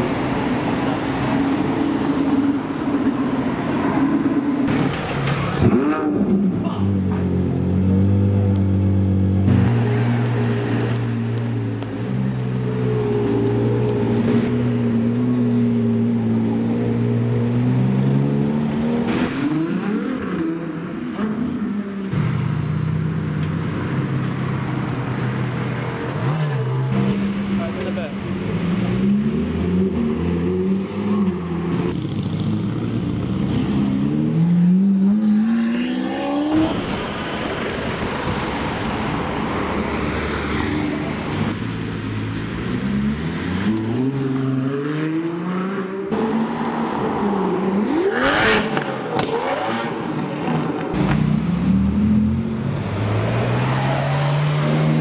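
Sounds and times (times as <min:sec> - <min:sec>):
sports car engines accelerating: 0:05.5 - 0:22.2, 0:23.2 - 0:36.9, 0:38.6 - 0:55.0.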